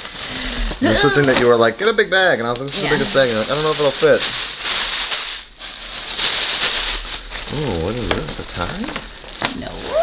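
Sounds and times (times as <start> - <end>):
tissue paper rustling: 2.7 - 10.0.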